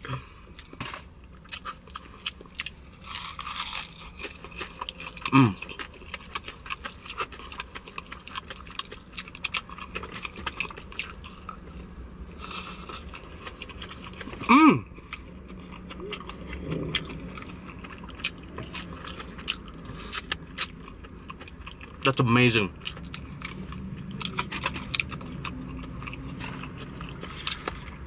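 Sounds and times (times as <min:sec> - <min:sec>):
person chewing crunchy food: 0:00.0 - 0:28.0.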